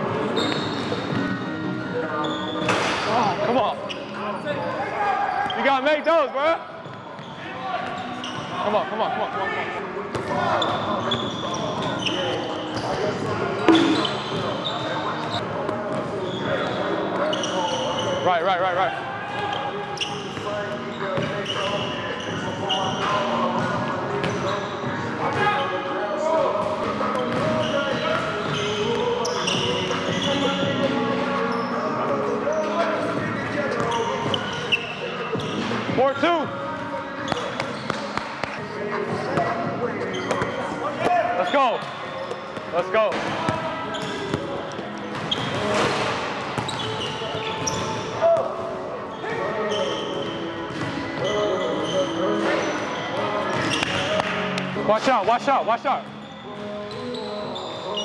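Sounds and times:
sneakers squeaking: 0:00.0 - 0:08.8, 0:09.9 - 0:18.5, 0:19.2 - 0:25.8, 0:26.6 - 0:58.0
players calling out: 0:13.6 - 0:14.7.

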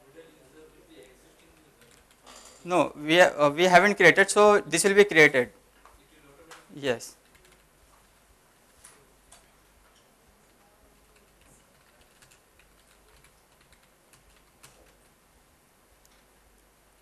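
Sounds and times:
low room hum: 0:00.0 - 0:17.0
computer keyboard keystrokes: 0:01.5 - 0:02.2, 0:07.2 - 0:07.7, 0:11.0 - 0:15.1.

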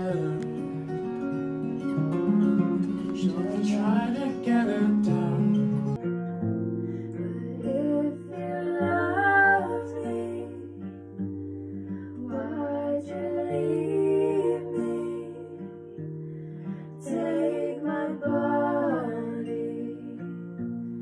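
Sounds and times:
person singing: 0:00.0 - 0:01.0, 0:03.0 - 0:06.0, 0:07.2 - 0:11.0, 0:12.1 - 0:15.9, 0:17.0 - 0:20.6
acoustic guitar: 0:00.0 - 0:21.0.

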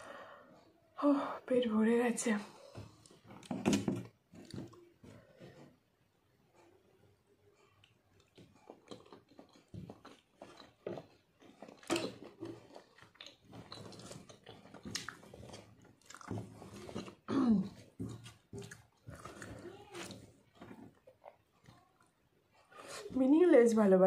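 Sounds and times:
person chewing food: 0:04.1 - 0:23.1
person coughing: 0:17.3 - 0:17.8.

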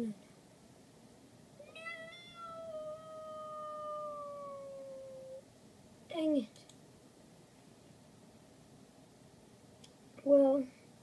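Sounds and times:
high-pitched drawn-out cry: 0:01.6 - 0:05.4.

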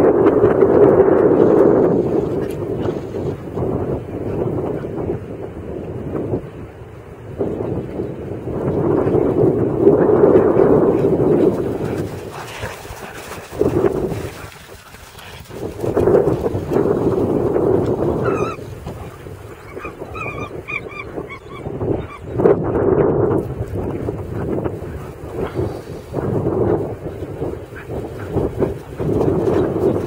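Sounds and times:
pitched animal calls: 0:18.2 - 0:18.7, 0:19.6 - 0:22.4.

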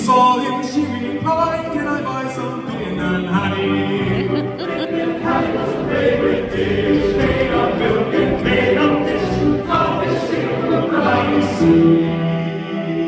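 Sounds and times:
men's choir singing: 0:00.1 - 0:13.0.

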